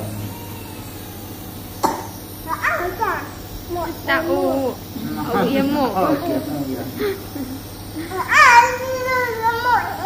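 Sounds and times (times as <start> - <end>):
low hum: 0.0 - 8.1
person coughing: 1.8 - 2.2.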